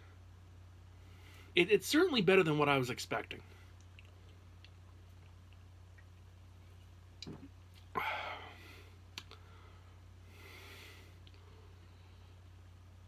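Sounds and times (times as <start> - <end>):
low steady hum: 0.0 - 13.0
man breathing out: 7.9 - 11.8.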